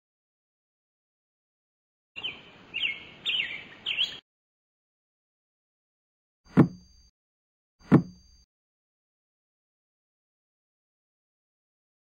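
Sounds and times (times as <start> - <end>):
bird chirping: 2.2 - 4.2.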